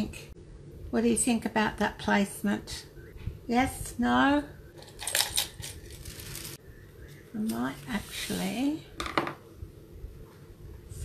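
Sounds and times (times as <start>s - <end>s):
small hard objects clinking: 4.8s - 6.6s.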